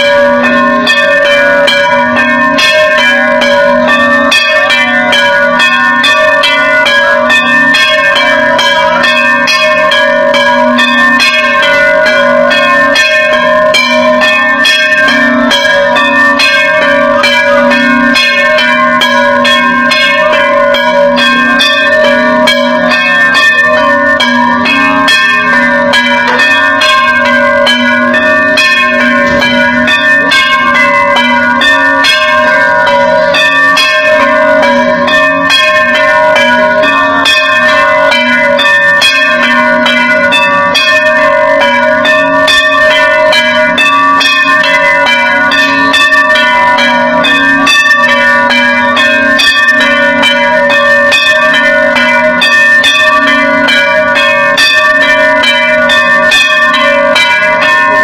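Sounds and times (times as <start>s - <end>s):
temple bells ringing rapidly: 0.0s - 58.0s.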